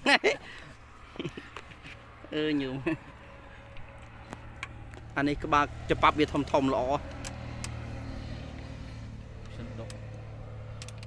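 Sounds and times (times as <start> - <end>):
hand tool clicks: 7.0 - 7.8.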